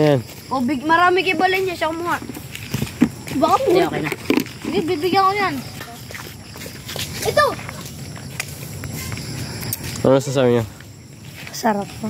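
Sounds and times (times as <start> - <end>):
boys talking and calling out: 0.0 - 12.0.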